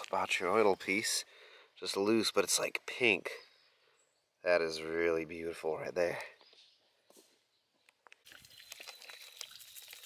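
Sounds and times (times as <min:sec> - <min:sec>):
stones clicking and clattering: 0:08.1 - 0:10.0.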